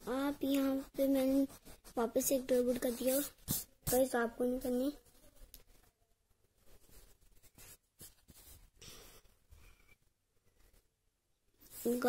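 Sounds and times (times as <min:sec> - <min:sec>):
pencil scratching on paper: 0:00.0 - 0:04.5, 0:11.6 - 0:12.0.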